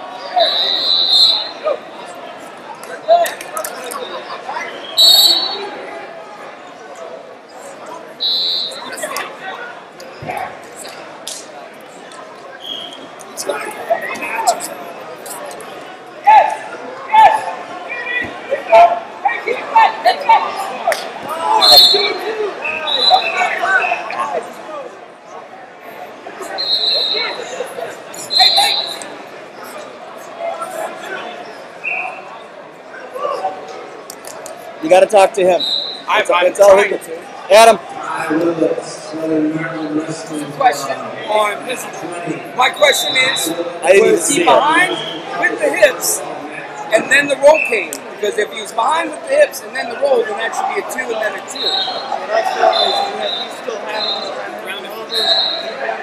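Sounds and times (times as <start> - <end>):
crowd shouting and chatter: 0.0 - 56.0
referee's whistle blasts: 0.4 - 1.7, 4.7 - 5.8, 8.2 - 9.0, 12.6 - 13.1, 21.6 - 24.0, 26.4 - 27.5, 28.2 - 29.1, 35.6 - 36.1, 42.6 - 45.6, 51.4 - 55.8.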